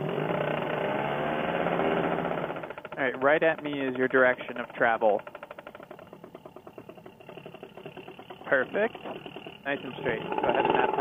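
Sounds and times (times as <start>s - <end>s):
two-stroke engine idling: 0.0s - 11.0s.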